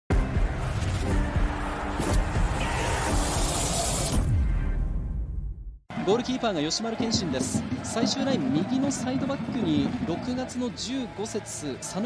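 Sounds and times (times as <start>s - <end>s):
electronic music: 0.1s - 5.2s.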